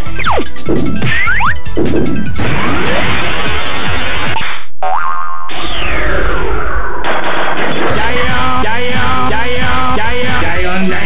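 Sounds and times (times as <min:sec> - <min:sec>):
pachinko machine music: 0:00.0 - 0:04.4
boing-like sound effects: 0:00.2 - 0:03.3, 0:04.8 - 0:07.0
rising tone: 0:05.4 - 0:07.0.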